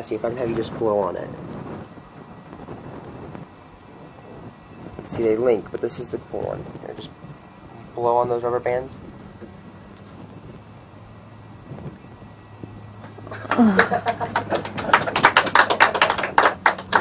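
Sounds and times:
people laughing: 13.3 - 17.0.

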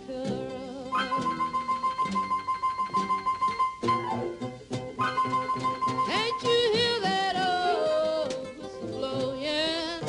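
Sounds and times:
plucked guitar: 0.0 - 10.0
upright bass: 0.0 - 10.0
repeated high note: 1.0 - 6.5.

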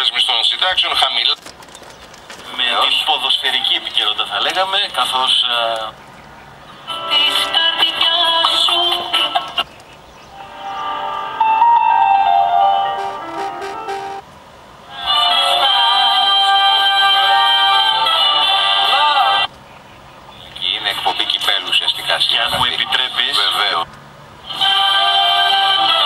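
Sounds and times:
radio music: 12.8 - 14.2, 20.4 - 23.8.

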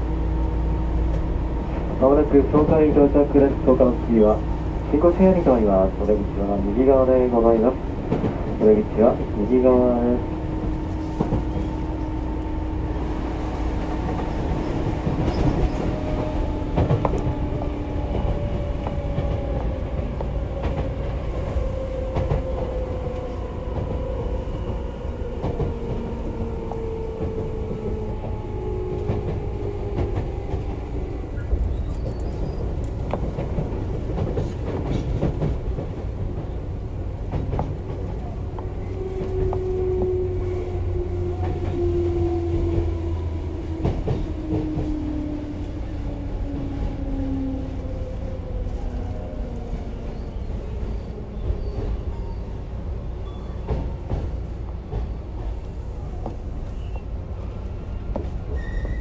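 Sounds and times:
wheel and rail rumble: 0.0 - 59.0
rail joints clacking: 0.5 - 59.0.

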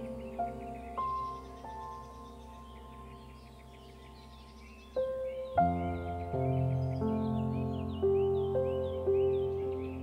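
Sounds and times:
birdsong chirping: 0.0 - 10.0
soft new-age music: 0.0 - 10.0.

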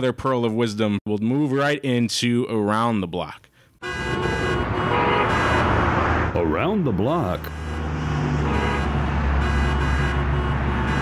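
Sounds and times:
road traffic with horns: 3.8 - 11.0.

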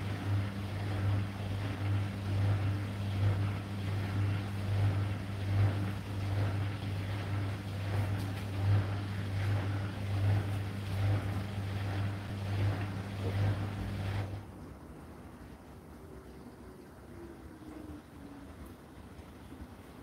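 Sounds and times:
washing machine motor hum: 0.0 - 20.0
water and laundry sloshing: 0.0 - 20.0.

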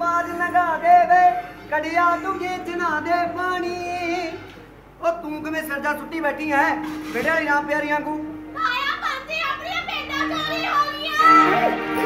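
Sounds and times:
stage background music: 9.8 - 12.0.

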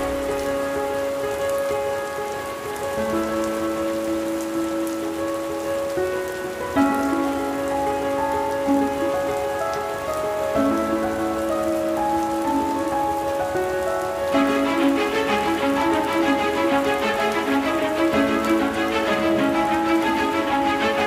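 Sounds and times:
slow music of held notes: 0.0 - 21.0
steady rain falling: 0.0 - 21.0.

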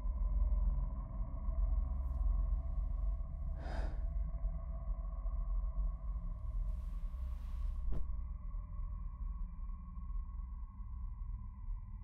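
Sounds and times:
low rumble: 7.6 - 8.4.

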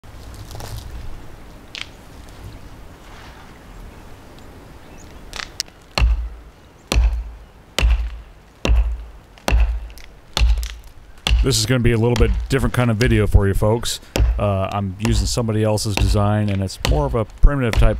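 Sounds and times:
hatchet chopping wood: 5.4 - 13.3, 14.0 - 17.9.

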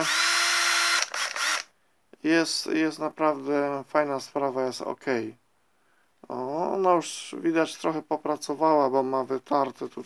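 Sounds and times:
cordless drill motor spinning: 0.0 - 1.7.

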